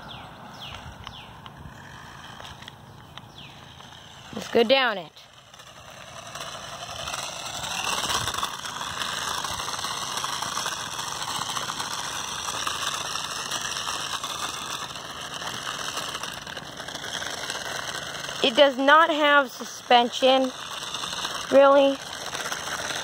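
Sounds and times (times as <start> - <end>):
toy truck motor whirring: 0.0 - 23.0
tyres rolling over pebbles: 0.0 - 23.0.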